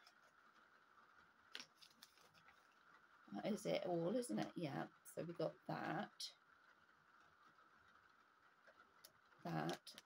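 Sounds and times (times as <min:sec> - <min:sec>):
faint clicks of plastic parts: 0:00.0 - 0:05.0, 0:06.1 - 0:10.0.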